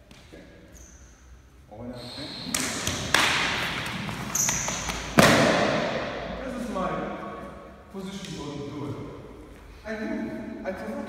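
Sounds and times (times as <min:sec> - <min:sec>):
voices: 0:01.7 - 0:03.1
sharp sparring hits echoing: 0:02.4 - 0:07.3.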